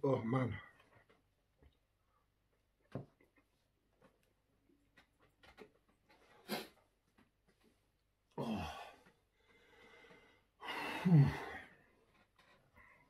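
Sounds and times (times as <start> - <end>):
man groaning: 8.4 - 9.0
man breathing heavily: 8.4 - 11.8.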